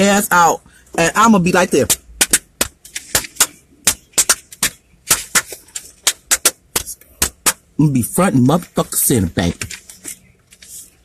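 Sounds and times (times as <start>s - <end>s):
person clapping hands: 2.2s - 7.6s.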